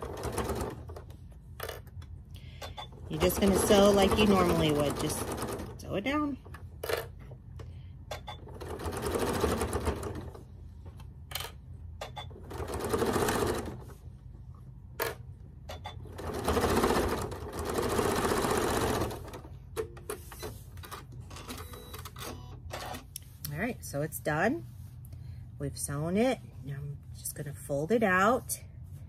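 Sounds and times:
sewing machine stitching: 0.0s - 1.0s, 2.9s - 7.1s, 8.2s - 10.4s, 12.2s - 13.9s, 15.9s - 19.5s.

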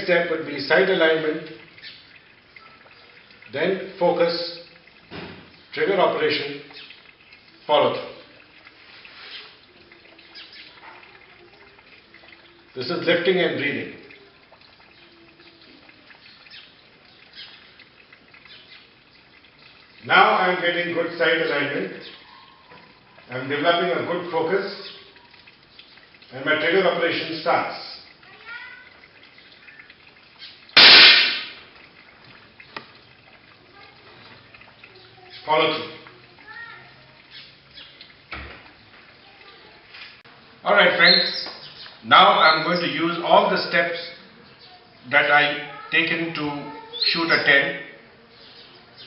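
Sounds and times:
air pistol shot: 30.8s - 31.6s.

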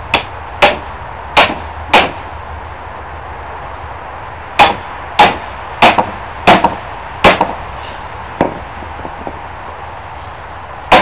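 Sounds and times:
hatchet striking log: 0.1s - 2.2s, 4.6s - 7.6s, 8.4s - 9.4s.

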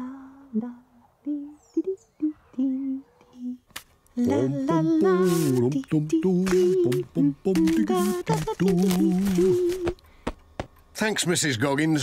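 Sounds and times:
voices singing in harmony: 0.0s - 3.6s, 4.2s - 10.0s.

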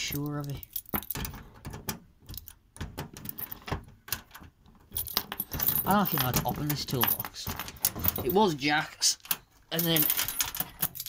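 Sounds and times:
metal hand tools clinking: 5.0s - 11.0s.

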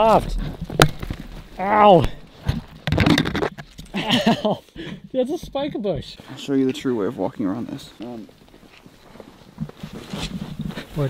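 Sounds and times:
snow crunching underfoot: 6.2s - 11.0s.

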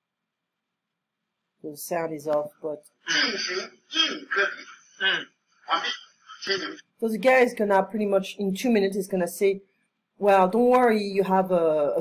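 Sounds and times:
man speaking through video playback: 3.1s - 6.8s.

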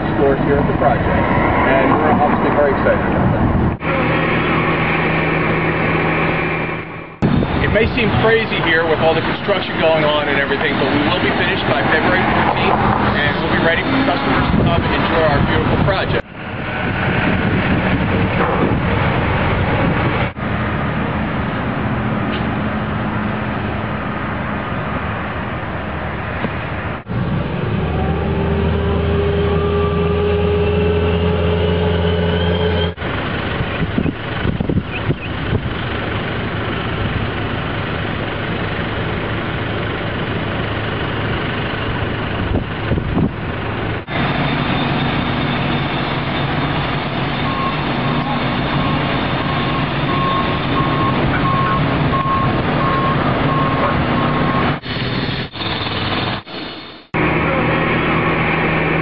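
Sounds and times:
construction machinery running: 0.0s - 59.0s
engine droning: 0.0s - 59.0s
reversing alarm beeps: 44.4s - 54.8s.

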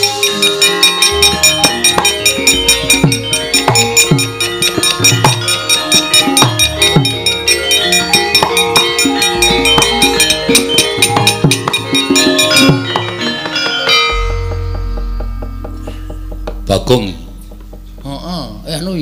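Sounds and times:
hand drum strokes: 0.0s - 19.0s
metallophones and gongs ringing: 0.0s - 19.0s.

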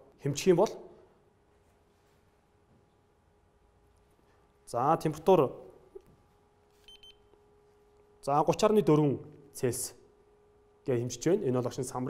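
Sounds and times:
thermometer short high beep: 6.8s - 7.3s.

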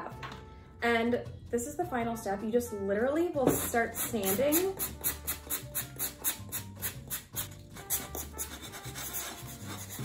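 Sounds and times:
sanding blocks scratching clay pots: 3.5s - 10.0s.

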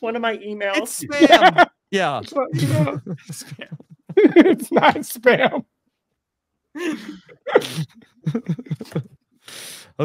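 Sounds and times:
people laughing: 0.8s - 5.6s, 6.8s - 9.2s.

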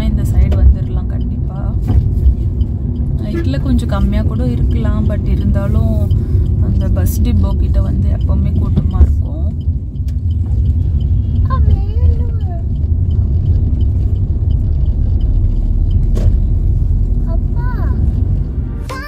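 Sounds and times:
car road rumble from inside cabin: 0.0s - 19.0s.

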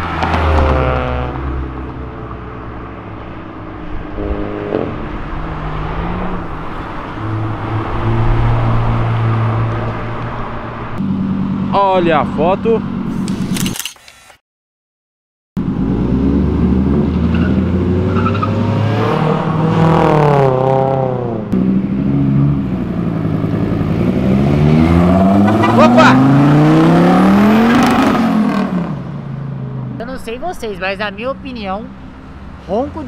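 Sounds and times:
car engine revving: 0.0s - 13.2s, 15.6s - 33.0s.

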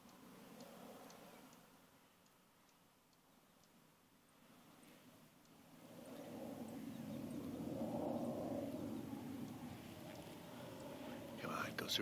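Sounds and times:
fighter jet rumbling overhead: 5.6s - 12.0s
man talking: 11.4s - 12.0s.

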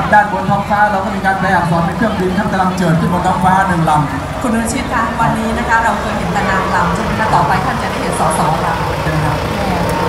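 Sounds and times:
man speaking over loudspeaker: 0.0s - 4.3s
diesel engine idling: 0.0s - 10.0s.

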